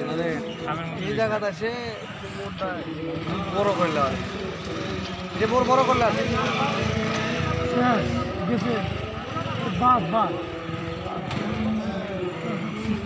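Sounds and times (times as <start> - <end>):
men talking and calling: 0.0 - 13.0
motorcycle engine at low revs: 2.6 - 13.0.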